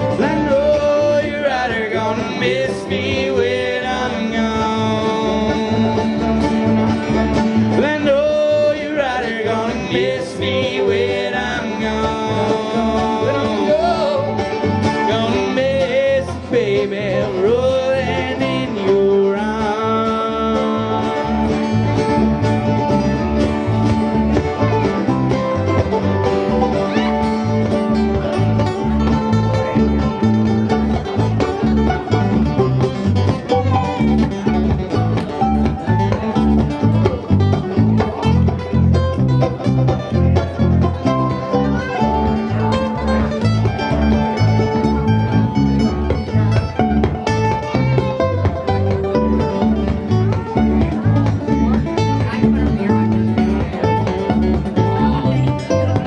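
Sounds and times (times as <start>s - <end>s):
acoustic guitar strumming: 0.0s - 56.0s
mandolin plucked melody: 0.0s - 56.0s.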